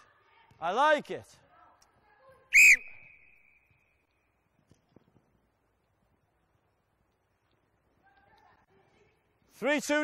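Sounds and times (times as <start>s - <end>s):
sports whistle blast: 2.5s - 3.9s.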